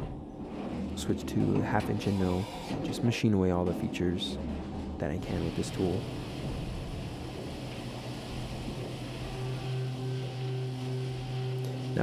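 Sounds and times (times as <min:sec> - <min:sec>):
milling machine spindle hum: 0:00.0 - 0:12.0
steady high tone: 0:09.2 - 0:12.0.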